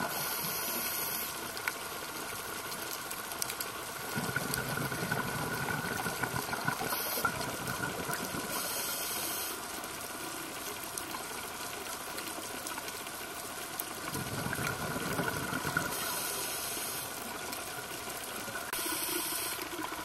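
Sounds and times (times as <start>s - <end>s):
underwater watery hiss: 0.0s - 1.8s, 4.0s - 9.9s, 14.1s - 17.5s, 18.5s - 20.0s
scuba exhaust bubbles: 3.8s - 9.5s, 13.9s - 17.2s.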